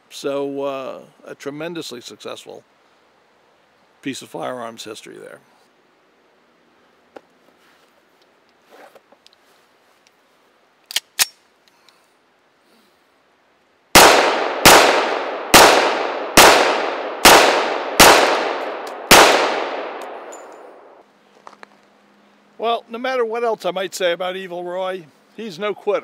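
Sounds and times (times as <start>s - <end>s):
pistol shots echoing: 14.0s - 20.9s.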